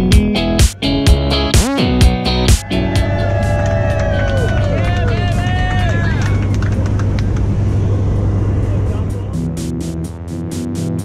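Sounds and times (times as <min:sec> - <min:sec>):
music track: 0:00.0 - 0:06.3, 0:08.7 - 0:11.0
airplane engine drone: 0:02.3 - 0:11.0.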